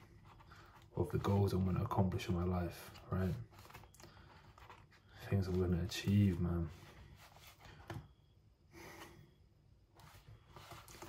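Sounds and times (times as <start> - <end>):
faint breath: 3.8 - 5.3, 6.8 - 9.5.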